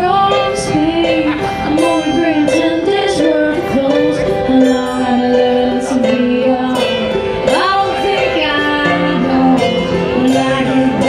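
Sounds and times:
acoustic guitar: 0.0 - 11.0
electric keyboard: 0.0 - 11.0
person singing: 0.0 - 11.0.

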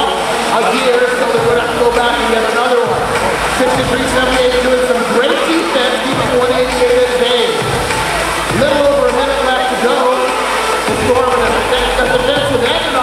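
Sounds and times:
crowd noise: 0.0 - 13.0
steady tone: 0.0 - 13.0
voice over public address: 0.0 - 13.0.

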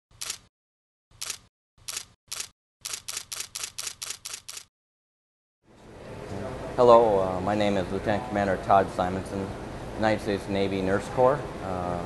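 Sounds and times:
camera shutter clicking: 0.2 - 0.5, 1.2 - 4.7.

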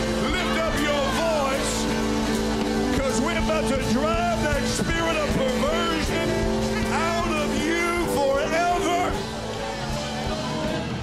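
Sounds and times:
keyboard chords: 0.0 - 11.0.

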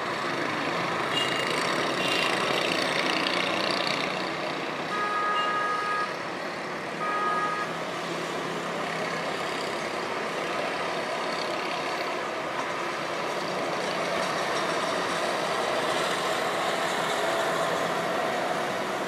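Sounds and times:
road traffic noise: 0.0 - 19.0
vehicle horn honking: 4.9 - 6.1, 7.0 - 7.7.

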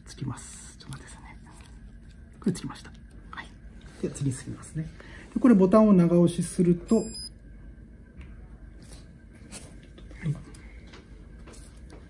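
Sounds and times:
short high electronic beep: 6.9 - 7.3.

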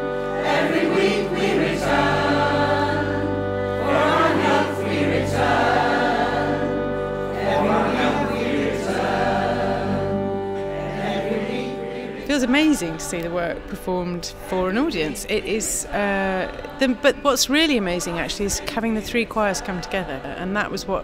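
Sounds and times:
violin playing: 0.0 - 18.7
choir singing: 0.0 - 20.8.

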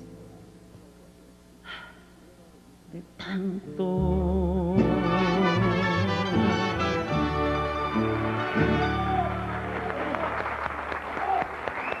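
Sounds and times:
mariachi band chord: 3.8 - 9.8
audience applauding: 8.0 - 12.0
voices among clapping: 9.2 - 12.0.

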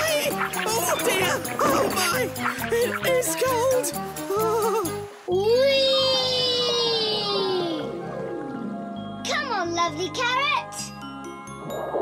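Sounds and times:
cartoon child's long cry: 4.3 - 7.9.

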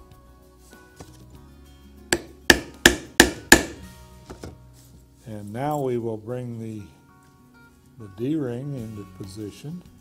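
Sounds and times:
hammer striking rivet setter: 2.2 - 3.8.

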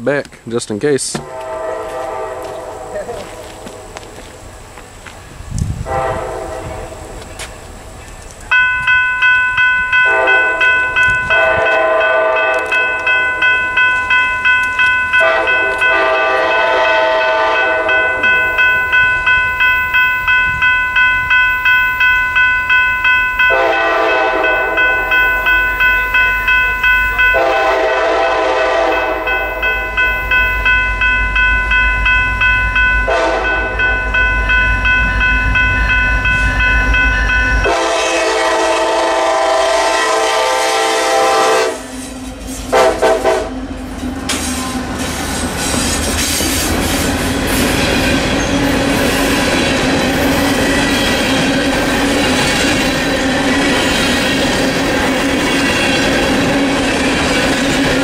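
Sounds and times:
locomotive horn blasts: 1.2 - 4.2, 5.8 - 7.1, 10.0 - 13.1, 15.1 - 18.3, 23.4 - 25.1, 27.2 - 30.0, 33.0 - 34.0, 37.6 - 42.0, 42.7 - 43.6
electronic crossing bell ringing: 8.5 - 28.0, 28.7 - 38.0.

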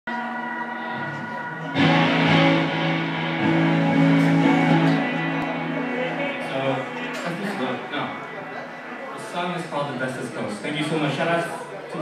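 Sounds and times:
electric guitars sustained chords: 0.1 - 9.3
live band playing: 0.8 - 9.0.

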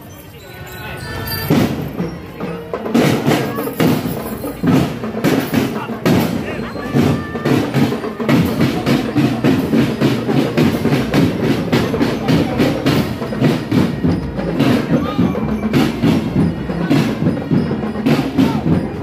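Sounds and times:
marching drum band: 1.3 - 19.0
marching bass drums: 1.4 - 19.0.

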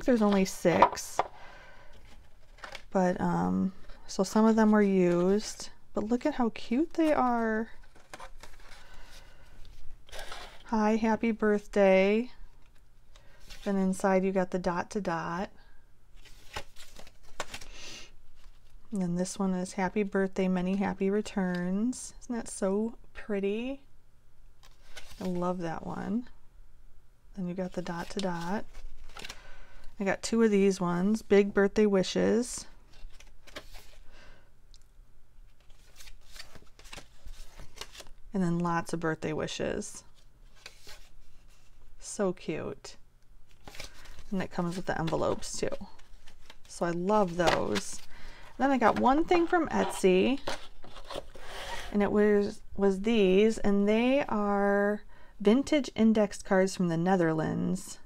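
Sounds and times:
paper cards rustling: 0.0 - 1.3, 1.9 - 2.9, 7.0 - 10.7, 16.2 - 17.8, 24.6 - 25.4, 27.7 - 29.4, 32.8 - 34.1, 35.4 - 38.2, 40.1 - 41.9, 43.5 - 51.8.

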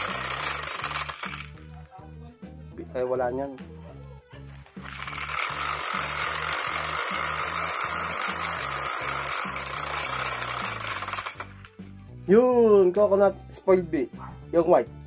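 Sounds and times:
spinner app rattle: 0.0 - 1.7, 4.7 - 12.0
background music with steady beat: 0.0 - 15.0.

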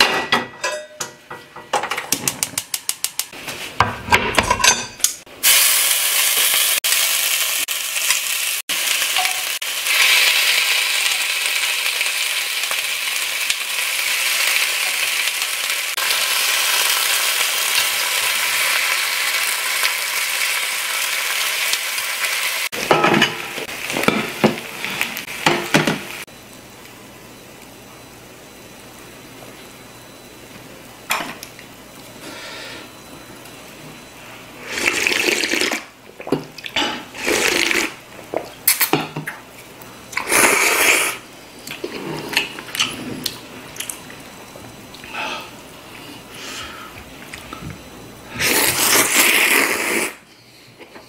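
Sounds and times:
dishes clattering: 0.0 - 2.6, 3.8 - 5.2, 22.8 - 24.6
meat sizzling on a hot pan: 5.4 - 26.3.

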